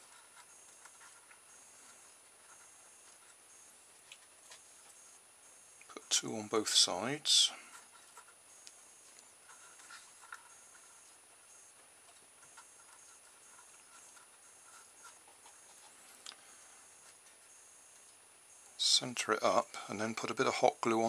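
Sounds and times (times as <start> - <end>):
faint cardboard clicks and rubs: 0.0 - 5.2, 7.6 - 18.2.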